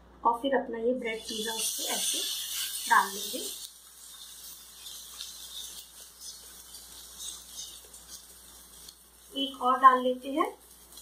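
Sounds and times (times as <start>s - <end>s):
bread sizzling in oil: 1.1s - 11.0s.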